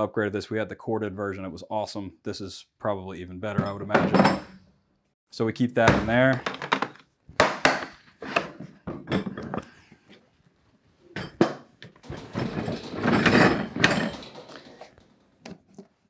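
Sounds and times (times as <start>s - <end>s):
case scraping on steel shelf: 12.0s - 14.9s.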